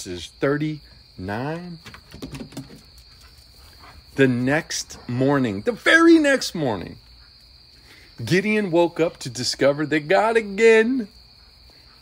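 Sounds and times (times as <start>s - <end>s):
cricket trill: 0.0s - 12.0s.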